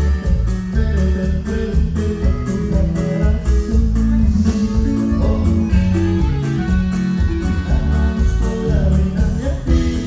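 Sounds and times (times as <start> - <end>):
drum kit: 0.0 - 10.0
electric bass: 0.0 - 10.0
live band playing instrumental: 0.0 - 10.0.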